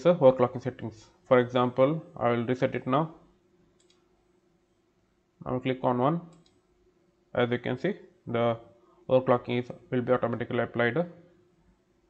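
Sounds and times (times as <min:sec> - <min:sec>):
computer mouse double click: 0:03.8 - 0:04.0.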